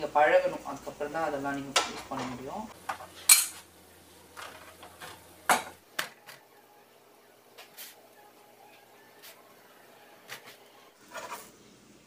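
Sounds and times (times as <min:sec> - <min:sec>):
dishes and utensils clinking: 0:01.8 - 0:03.6.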